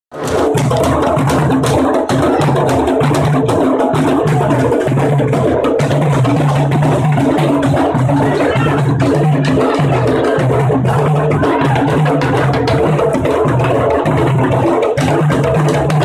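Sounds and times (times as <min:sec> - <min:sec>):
street drum group playing: 0:00.1 - 0:16.0.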